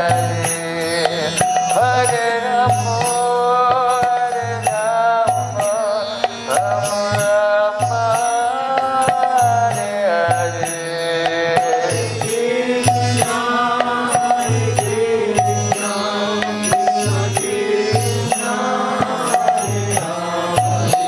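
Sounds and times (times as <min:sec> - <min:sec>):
drum pattern: 0:00.0 - 0:21.0
man singing devotional chant: 0:00.0 - 0:21.0
sharp percussion ticks: 0:00.0 - 0:21.0
steady drone: 0:00.0 - 0:21.0.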